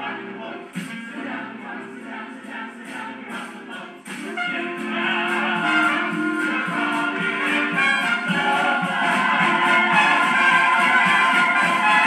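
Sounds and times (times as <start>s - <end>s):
ensemble singing show tune: 0.0s - 12.0s
orchestral accompaniment: 0.0s - 12.0s.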